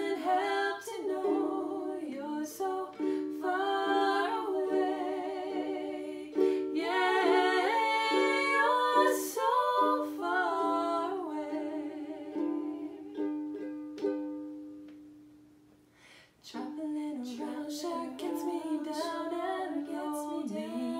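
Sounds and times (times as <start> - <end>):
woman singing with vibrato: 0.0 - 13.4, 16.4 - 20.9
ukulele strumming chords: 0.0 - 15.8.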